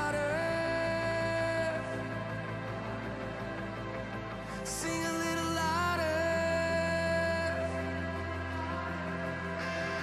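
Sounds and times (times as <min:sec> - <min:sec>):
slow music of held chords: 0:00.0 - 0:10.0.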